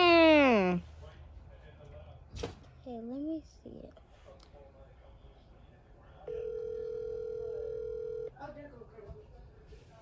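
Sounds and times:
telephone ringback tone: 6.3 - 8.3.

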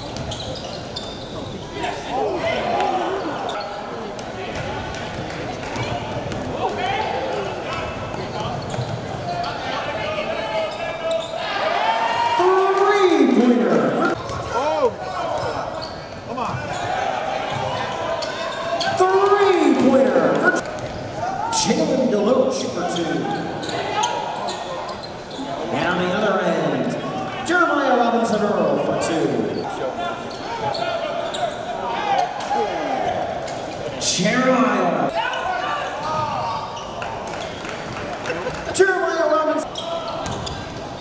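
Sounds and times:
echoing voices: 1.4 - 41.0.

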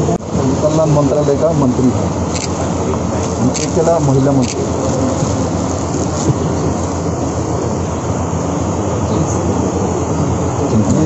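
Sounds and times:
indistinct crowd chatter: 0.0 - 11.0
low rumbling noise: 0.0 - 11.0.

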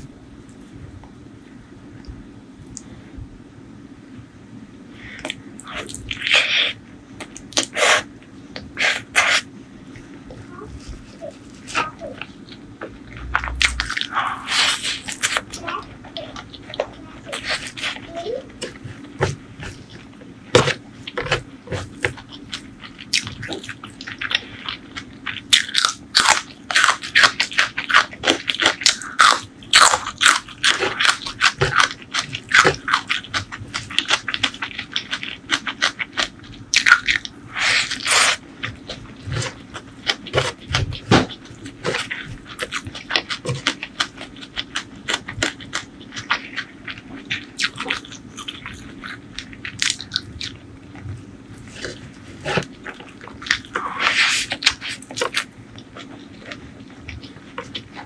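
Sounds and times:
crunchy chewing: 5.0 - 58.0.

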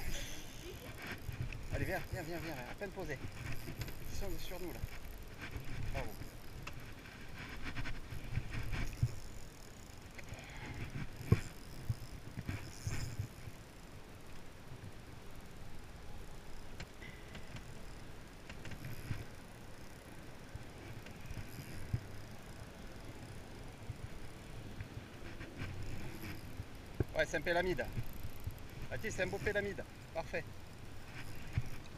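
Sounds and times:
fishing reel cranking: 0.0 - 13.9, 17.3 - 24.5, 25.4 - 31.9
wind: 0.0 - 31.9.

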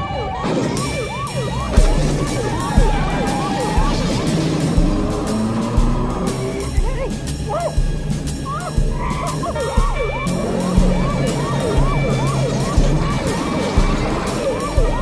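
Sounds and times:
action film score: 0.0 - 15.0
police sirens yelping: 0.0 - 15.0.

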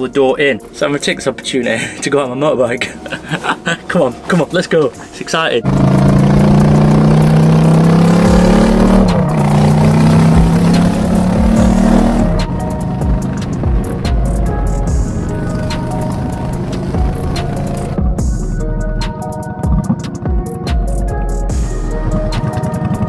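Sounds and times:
motorcycle engine accelerating: 5.6 - 23.0
electronic music with steady beat: 5.8 - 23.0.

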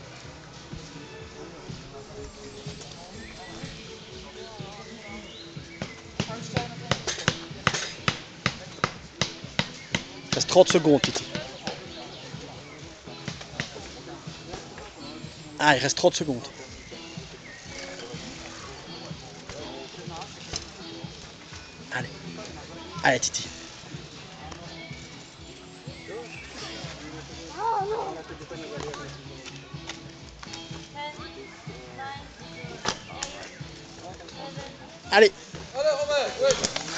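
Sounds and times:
murmur of spectators' voices: 0.0 - 36.9
bicycle wheels knocking on rock: 5.3 - 12.0.

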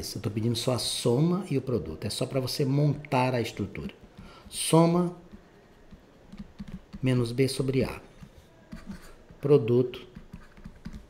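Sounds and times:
stylus tapping on pen tablet: 3.8 - 4.6, 5.2 - 7.2, 8.1 - 11.0.

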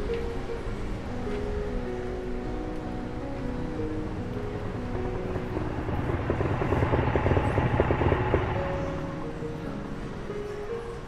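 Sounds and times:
film music score: 0.0 - 11.0
motorcycle engine pulsing: 4.8 - 9.2.

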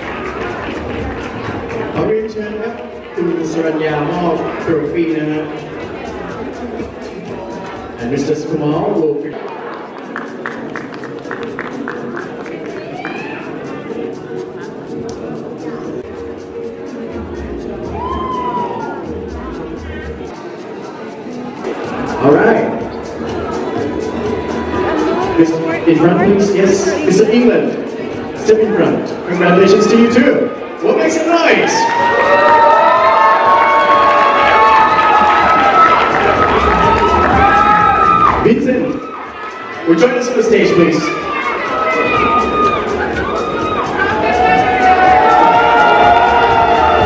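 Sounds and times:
background music: 0.0 - 47.0
crowd chatter: 0.0 - 47.0.

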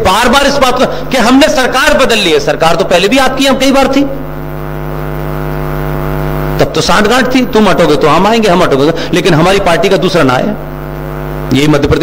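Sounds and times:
person speaking: 0.0 - 4.3, 6.6 - 10.7
electronic buzzing drone: 0.0 - 12.0
low hum: 4.0 - 11.5.

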